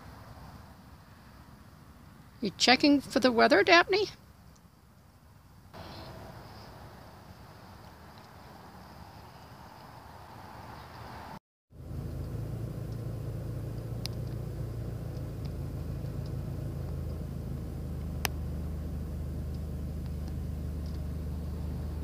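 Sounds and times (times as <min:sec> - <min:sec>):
car engine idling: 0:11.8 - 0:22.0
faint high ticks: 0:14.0 - 0:14.4
sharp clicks: 0:14.0 - 0:14.4.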